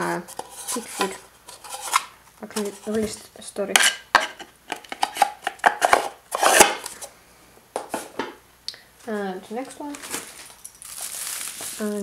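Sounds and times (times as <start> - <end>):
rustling scrape: 0.2 - 3.2, 5.8 - 7.1.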